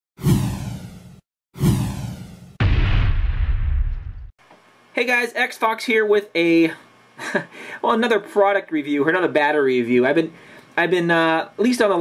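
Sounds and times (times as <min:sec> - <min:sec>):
swoosh sound effects: 0:00.2 - 0:04.3.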